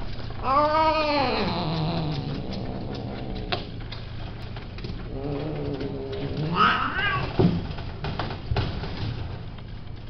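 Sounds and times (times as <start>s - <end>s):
cat yowling: 0.4s - 2.2s, 6.5s - 7.4s.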